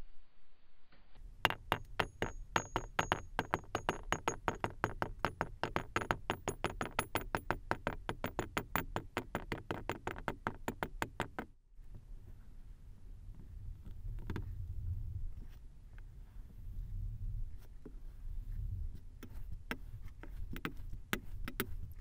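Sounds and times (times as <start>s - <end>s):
sand balls tapping in glass: 1.4s - 11.5s.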